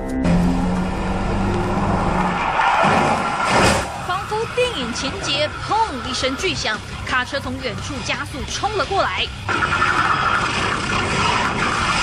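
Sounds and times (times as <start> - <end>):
car engine humming: 0.0 - 7.8
road noise rushing: 0.3 - 7.4.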